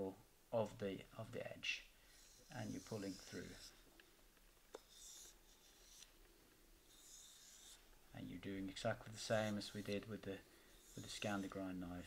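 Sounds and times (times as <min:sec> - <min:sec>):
knife rubbing on leather strop: 0:02.2 - 0:03.8, 0:04.8 - 0:06.2, 0:06.8 - 0:07.9.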